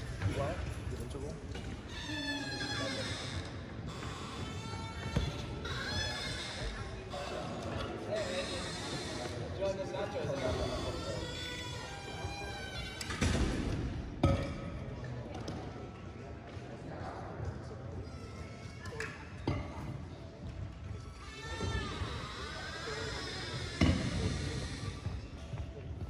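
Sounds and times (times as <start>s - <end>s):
people talking in a gym: 0.0s - 26.0s.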